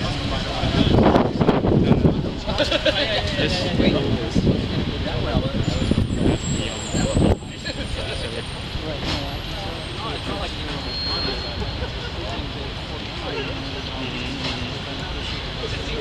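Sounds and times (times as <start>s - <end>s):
men talking: 0.0s - 16.0s
street traffic rumble: 0.0s - 16.0s.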